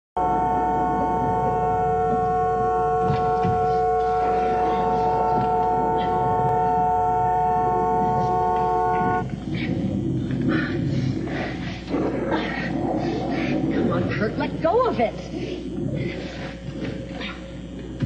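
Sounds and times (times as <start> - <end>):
car horn blaring: 0.2 - 9.3.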